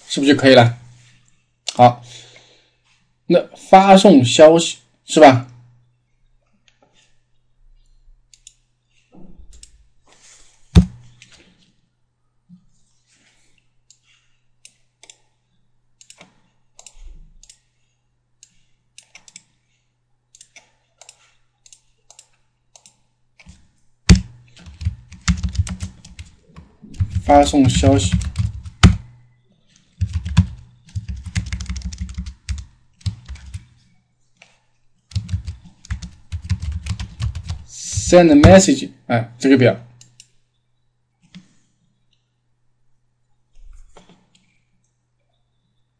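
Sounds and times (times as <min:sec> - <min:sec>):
computer mouse clicks: 0:08.3 - 0:08.6, 0:09.5 - 0:09.8, 0:13.9 - 0:15.3, 0:16.0 - 0:17.7, 0:18.4 - 0:19.6, 0:20.3 - 0:23.6, 0:39.9 - 0:40.4
computer keyboard typing: 0:20.4 - 0:29.2, 0:29.8 - 0:33.8, 0:34.4 - 0:38.6.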